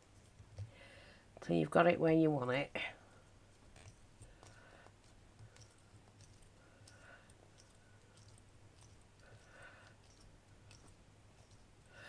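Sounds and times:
hands rubbing clay: 3.3s - 12.0s.

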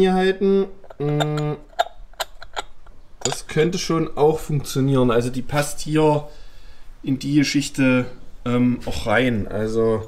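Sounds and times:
metal hub cap clicking on wheel: 0.8s - 3.5s.

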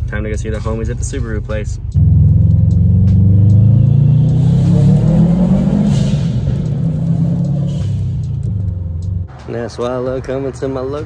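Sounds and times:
car engine accelerating from cabin: 1.9s - 9.3s.

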